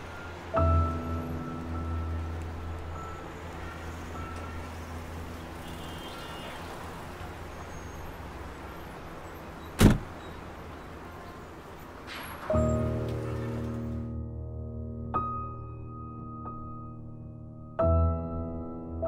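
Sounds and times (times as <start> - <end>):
background music: 0.0 - 6.1.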